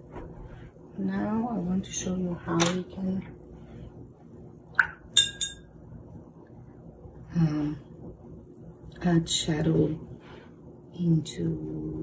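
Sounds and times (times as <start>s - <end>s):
glass clinks: 5.2s - 5.7s.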